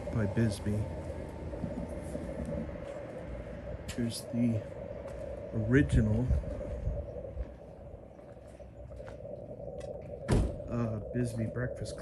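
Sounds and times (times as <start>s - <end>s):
street background rumble: 0.0s - 12.0s.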